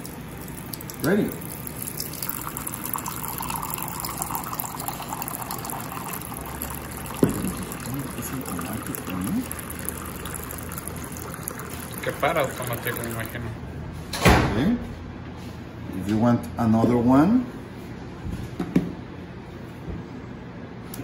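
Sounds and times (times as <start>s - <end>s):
water dispenser pump: 0.0s - 13.4s
water trickling into a mug: 0.0s - 13.4s.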